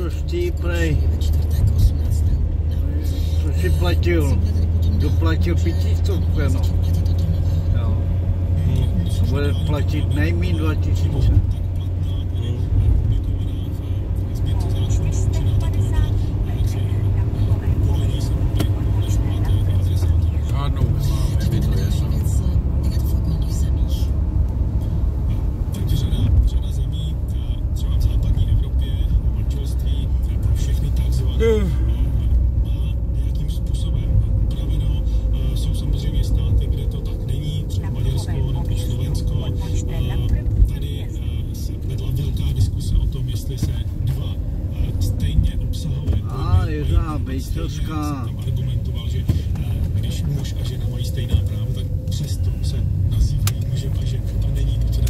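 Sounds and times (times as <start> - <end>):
car engine and tyres droning: 0.0 - 55.0.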